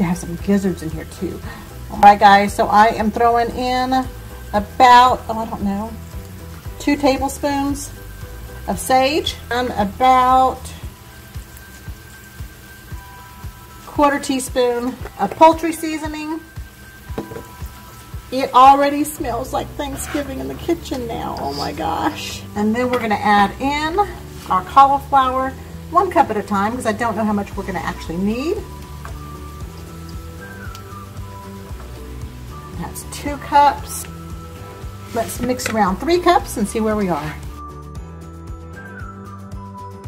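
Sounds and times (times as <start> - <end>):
vegetables sizzling in frying pan: 0.0 - 37.6
background music with low thump: 0.0 - 40.0.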